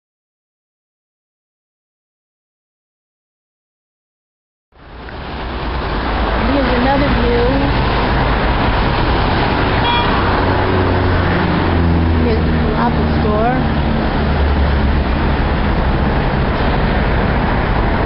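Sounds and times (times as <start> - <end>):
road traffic driving past: 4.8 - 18.0
brief high beep: 9.8 - 10.2.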